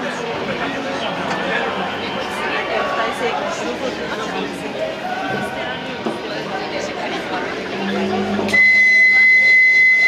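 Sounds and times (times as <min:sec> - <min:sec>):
high-pitched boat signal tone: 0:07.7 - 0:10.0.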